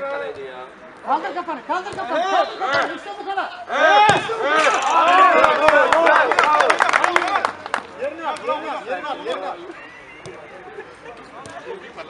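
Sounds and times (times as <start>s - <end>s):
men shouting: 2.1s - 6.6s
ball being kicked: 4.0s - 4.4s.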